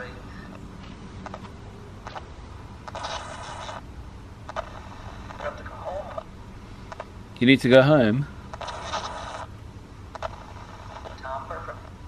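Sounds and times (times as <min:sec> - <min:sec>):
broadcast scraps: 0:02.9 - 0:03.8, 0:08.6 - 0:09.5
radio hiss: 0:02.9 - 0:03.8, 0:04.5 - 0:06.3, 0:08.6 - 0:09.5, 0:10.2 - 0:12.0
radio static bursts: 0:02.9 - 0:03.8, 0:04.5 - 0:06.3, 0:08.6 - 0:09.5, 0:10.2 - 0:12.0
voice fragments: 0:05.3 - 0:06.3.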